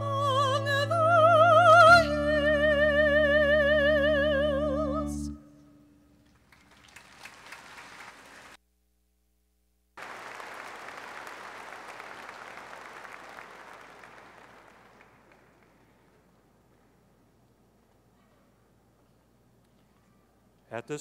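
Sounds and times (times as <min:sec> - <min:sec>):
large crowd applauding: 0:06.3 - 0:08.6, 0:10.0 - 0:16.4.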